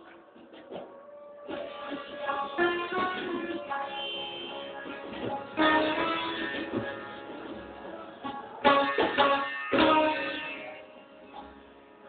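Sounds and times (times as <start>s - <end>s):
sitar playing: 1.3s - 12.0s.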